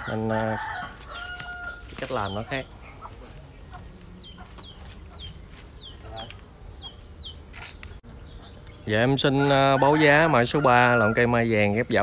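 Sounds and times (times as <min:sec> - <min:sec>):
chickens peeping: 0:00.0 - 0:12.0.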